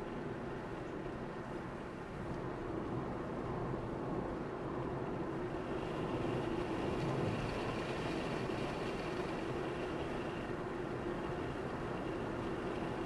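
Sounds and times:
road and engine noise: 0.0 - 13.0.

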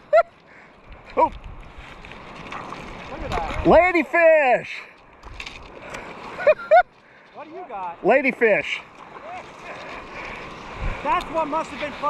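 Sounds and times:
water lapping: 0.0 - 12.0
wind buffeting microphone: 0.8 - 4.0, 9.5 - 12.0.

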